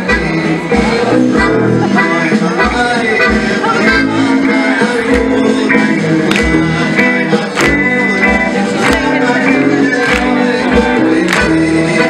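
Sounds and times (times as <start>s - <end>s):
accordion: 0.0s - 12.0s
klezmer band playing: 0.0s - 12.0s.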